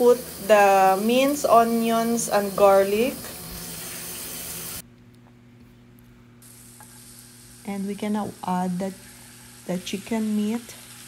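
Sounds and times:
onions sizzling in hot oil: 0.0s - 4.8s, 6.4s - 11.0s.

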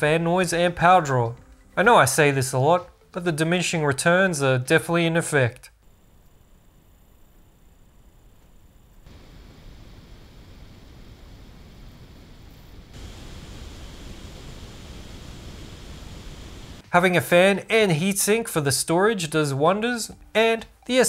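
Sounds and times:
computer cooling fan hiss: 5.8s - 17.2s.

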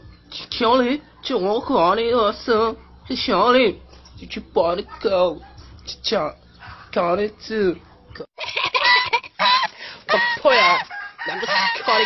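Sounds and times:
goose honking: 8.8s - 12.0s.

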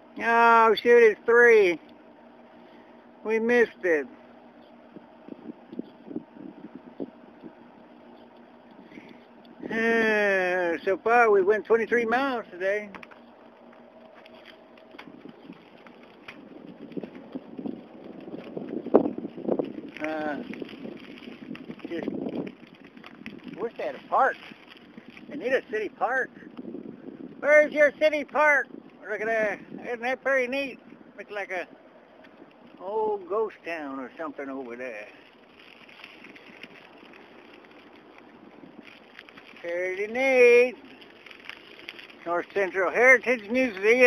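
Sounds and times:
bicycle rolling on road: 0.0s - 44.0s
wind buffeting microphone: 4.8s - 10.6s, 14.6s - 33.2s, 35.6s - 40.9s.

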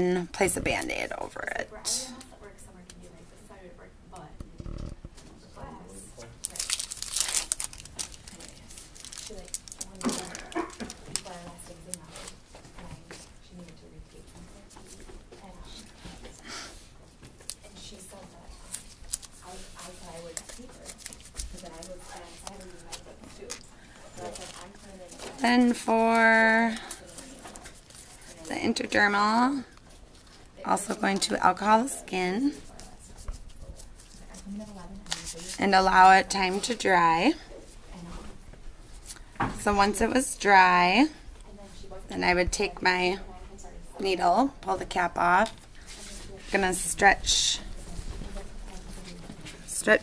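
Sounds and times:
bandage wrapper crinkling and tearing: 6.2s - 12.4s, 18.6s - 23.6s, 33.2s - 35.6s.

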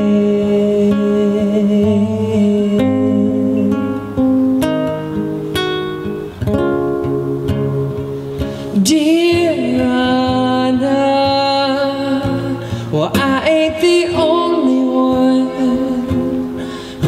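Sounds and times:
acoustic guitar playing: 0.0s - 17.0s.

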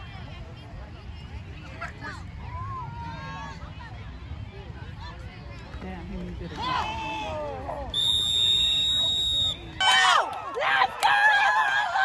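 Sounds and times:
spectators shouting and cheering: 6.4s - 12.0s
referee's whistle blast: 7.9s - 9.6s.

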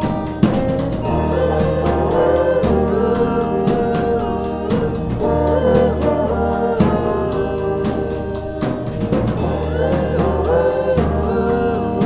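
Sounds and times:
keyboard: 0.0s - 12.0s
low bass: 0.0s - 12.0s
sliding lead melody: 0.0s - 12.0s.

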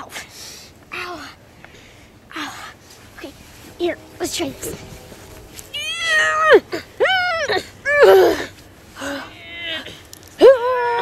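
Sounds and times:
young child whining cry: 5.8s - 11.0s.

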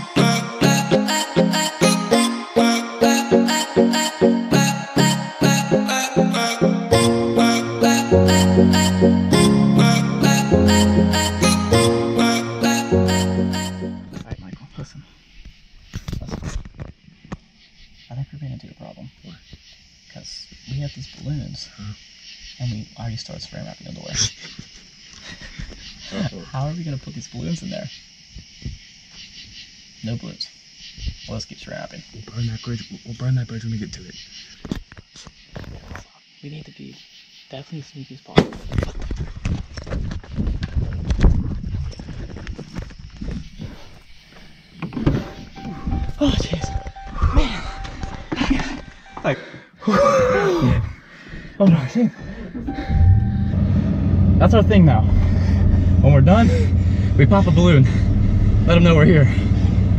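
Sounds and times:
hurried footsteps: 38.8s - 49.3s.

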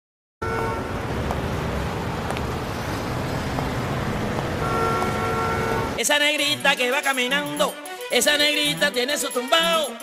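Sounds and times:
street traffic noise: 0.4s - 6.4s.

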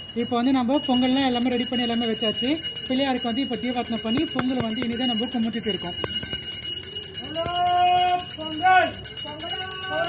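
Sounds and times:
hand bell ringing: 0.0s - 10.0s.

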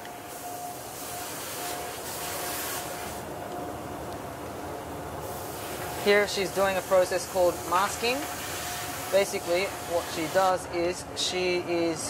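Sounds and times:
steady hum: 0.0s - 12.0s
airbrush spraying hiss: 0.2s - 3.2s, 5.2s - 10.6s.

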